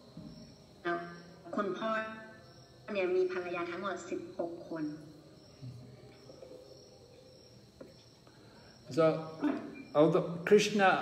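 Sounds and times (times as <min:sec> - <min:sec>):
insect chirping trill: 0:00.0 - 0:11.0.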